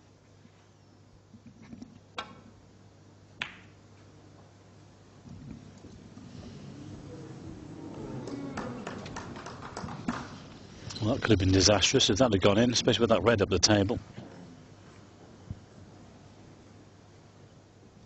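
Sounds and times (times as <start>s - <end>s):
audience murmur: 6.1s - 10.8s.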